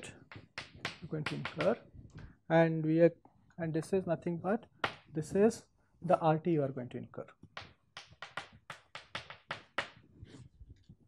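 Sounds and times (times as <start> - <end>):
chalk tapping on blackboard: 0.0 - 1.8, 7.5 - 10.0.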